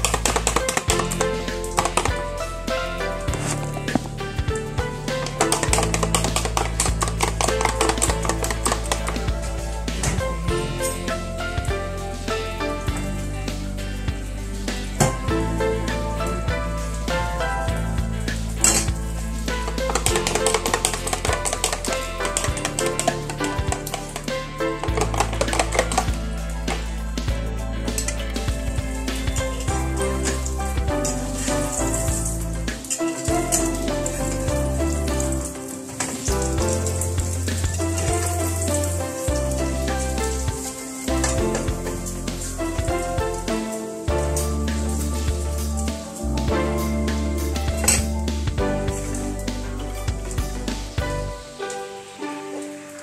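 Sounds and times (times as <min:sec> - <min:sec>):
background music: 0:00.0 - 0:53.0
food sizzling in a pan: 0:00.0 - 0:53.0.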